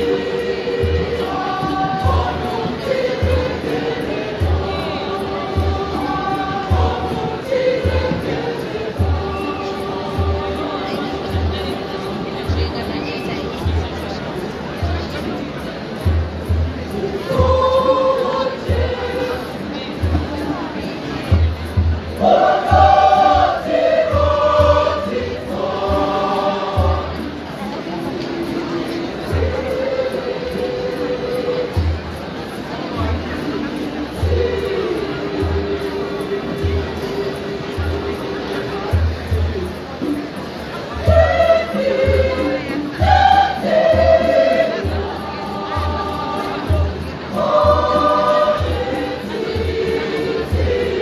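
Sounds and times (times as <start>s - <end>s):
deep drum beats: 0.0s - 13.0s, 18.6s - 27.5s
choir singing: 0.0s - 14.5s, 16.9s - 21.1s, 21.7s - 39.4s, 40.6s - 51.0s.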